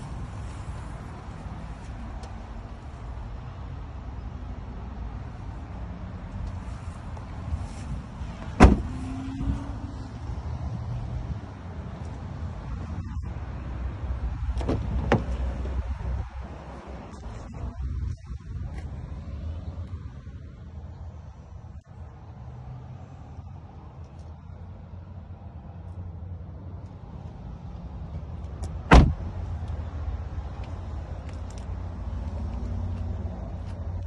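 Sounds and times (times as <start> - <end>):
car door slamming shut: 8.5 - 9.0, 14.6 - 15.4, 28.8 - 29.2.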